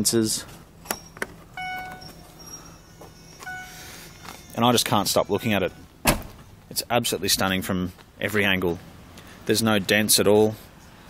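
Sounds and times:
warning beep: 0.9 - 6.6
power tailgate motor closing: 6.0 - 6.5.

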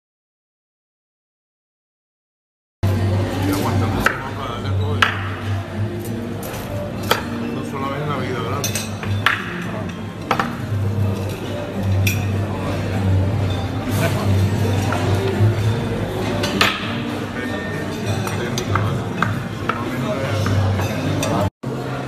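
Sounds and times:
cutlery and dishes clinking: 2.8 - 21.5
background music: 2.8 - 22.0
murmur of voices: 2.8 - 22.0.

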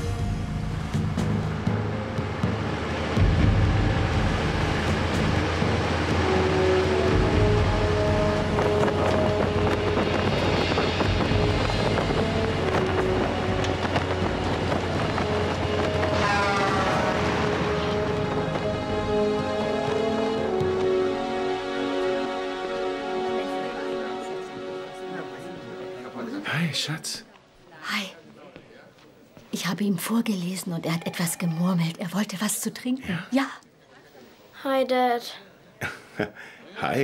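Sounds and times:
film score music: 0.0 - 27.6
wind: 0.0 - 37.0
heavy truck driving past: 1.3 - 21.4.

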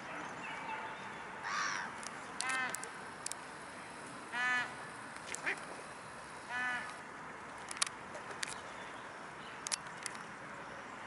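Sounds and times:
sharp clicks: 2.0 - 3.5, 7.6 - 8.6, 9.6 - 10.2
waterfowl calling: 4.3 - 5.7, 6.3 - 7.0.

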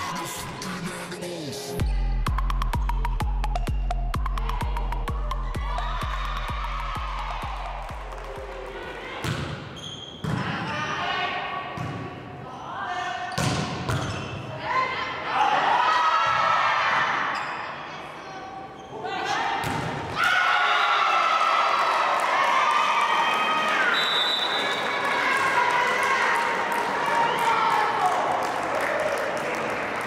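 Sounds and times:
background music: 0.0 - 8.8
cheering: 5.5 - 9.2, 20.2 - 30.0
volleyball hits: 9.2 - 10.6.

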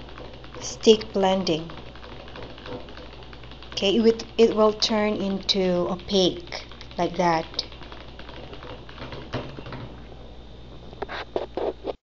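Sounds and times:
liquid mixture churning: 0.0 - 10.2
stick blender motor humming: 0.0 - 11.5.

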